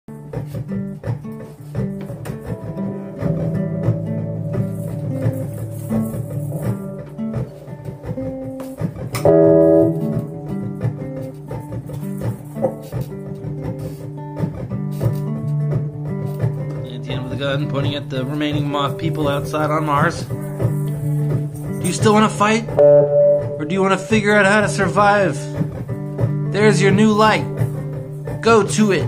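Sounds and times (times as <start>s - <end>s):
guitars picking notes: 0.1s - 29.0s
loud ringing guitar chord: 9.2s - 12.8s, 22.8s - 25.4s.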